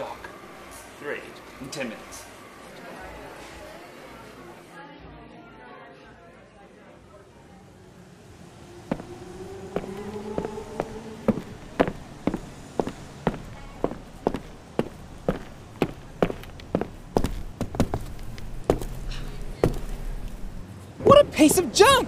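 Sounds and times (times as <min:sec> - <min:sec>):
faint rising drone: 0:07.5 - 0:20.6
footsteps on pavement: 0:08.9 - 0:20.6.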